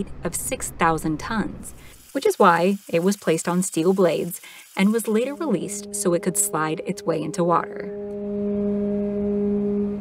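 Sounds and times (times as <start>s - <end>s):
ship's horn blast: 5.5s - 10.0s.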